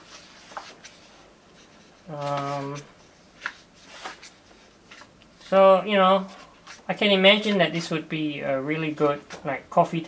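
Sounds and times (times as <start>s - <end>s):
book page turning: 0.0s - 1.1s, 1.7s - 5.1s.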